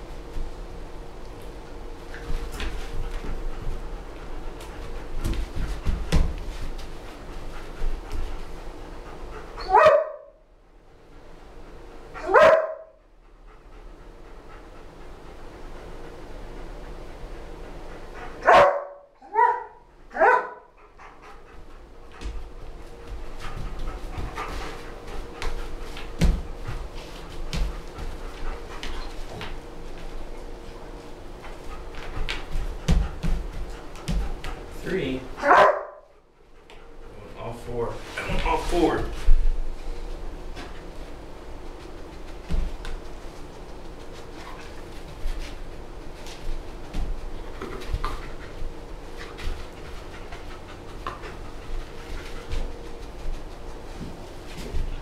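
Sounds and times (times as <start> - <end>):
dog barking: 9.6 - 10.3, 12.2 - 13.0, 18.4 - 20.7, 35.4 - 36.1.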